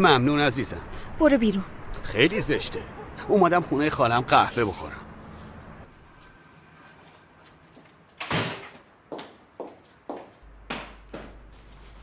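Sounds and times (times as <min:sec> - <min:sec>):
footsteps on wooden floor: 0:06.9 - 0:12.0
door shutting with a thud: 0:08.2 - 0:08.8.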